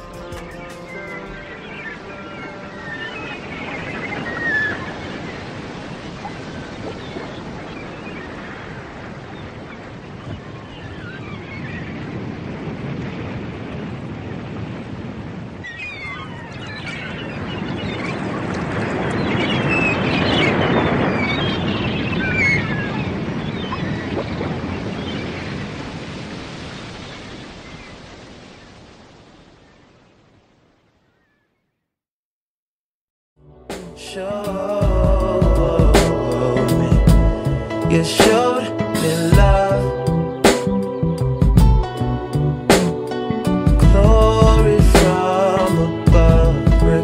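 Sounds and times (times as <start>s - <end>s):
ocean waves washing: 0.0s - 30.6s, 33.5s - 47.0s.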